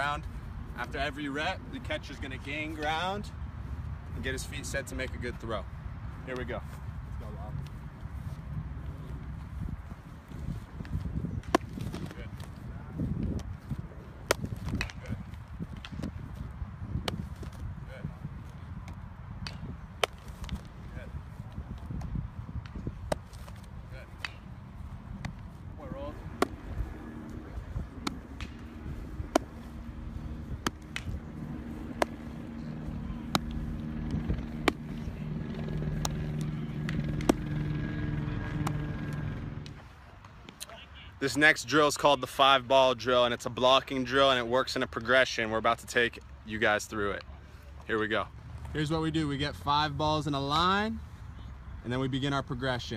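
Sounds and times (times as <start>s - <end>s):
steady low hum: 0.0s - 40.2s
baseballs smacking into gloves: 10.8s - 16.2s, 17.0s - 17.6s, 18.8s - 20.8s, 21.5s - 24.5s, 26.3s - 37.6s.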